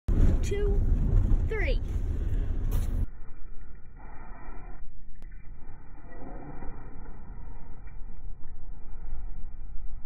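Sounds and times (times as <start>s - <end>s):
road noise inside car: 0.1s - 3.1s.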